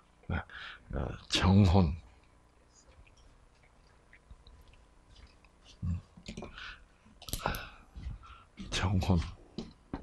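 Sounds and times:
footstep clicks and scuffs: 3.5s - 10.0s.

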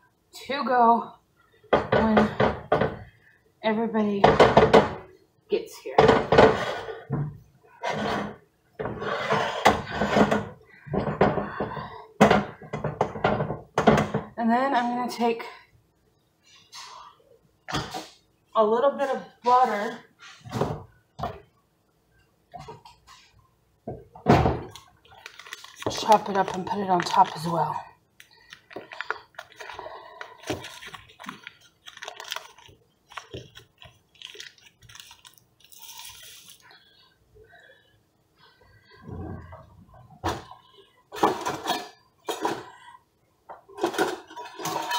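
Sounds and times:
paper wrapper crinkling: 24.7s - 36.8s.

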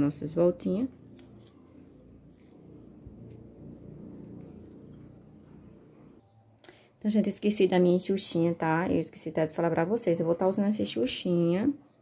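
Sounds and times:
low steady rumble: 0.3s - 6.2s
ribbon and thread handling: 0.9s - 5.1s.

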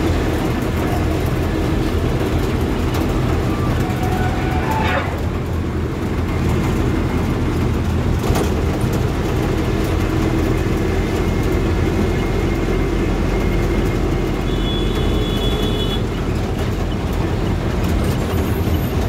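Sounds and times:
heavy vehicle engine running: 0.0s - 19.0s
road noise: 0.0s - 19.0s.

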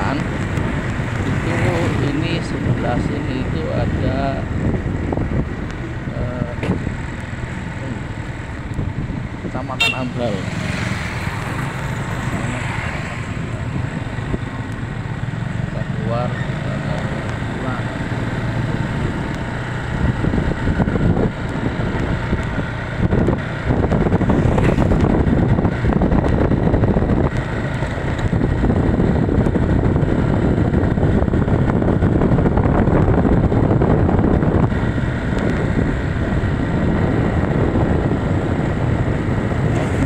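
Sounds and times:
motorcycle engine running: 0.0s - 40.0s
wind rushing over microphone: 0.0s - 40.0s.

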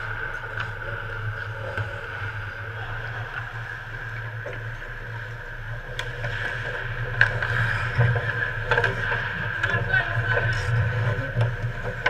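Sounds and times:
steady background hum: 0.0s - 12.0s
skates scraping ice: 0.1s - 12.0s
sticks and puck clacking: 3.2s - 12.0s.

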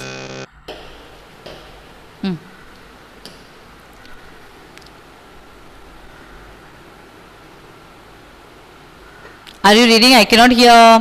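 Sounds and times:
low hiss of line noise: 0.0s - 11.0s.

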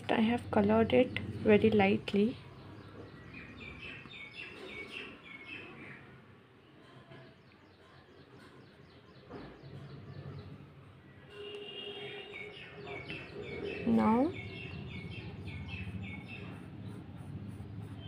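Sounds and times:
birds chirping: 0.0s - 6.2s, 7.2s - 18.0s.

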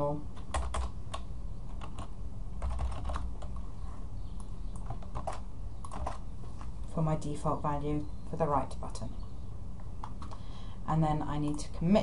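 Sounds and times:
computer keyboard typing clicks: 0.4s - 3.6s, 4.4s - 6.2s.

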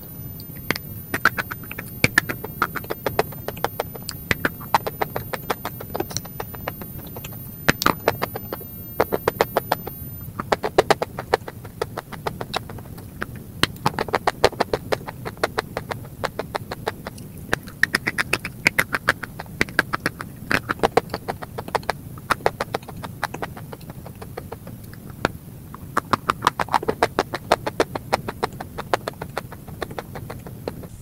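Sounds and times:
chewing crumbly chalk: 0.4s - 31.0s.

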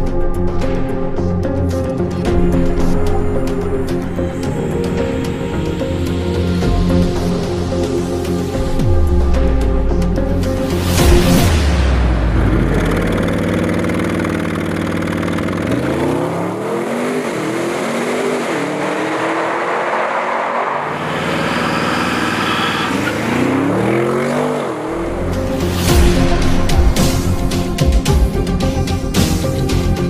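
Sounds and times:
car engine accelerating: 8.6s - 27.8s.

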